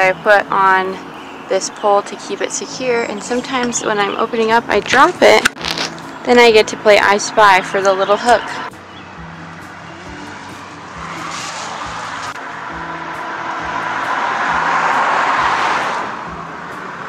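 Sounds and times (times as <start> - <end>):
soft background music: 0.0 - 17.0
car tyres hissing on wet road: 10.1 - 12.7, 13.6 - 16.2.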